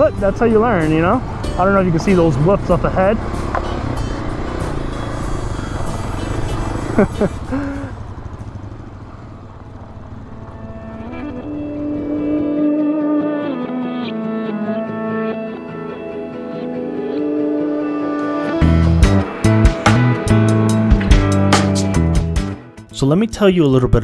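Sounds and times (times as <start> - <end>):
dirt bike engine: 0.0 - 22.5
music with long held notes: 0.0 - 23.2.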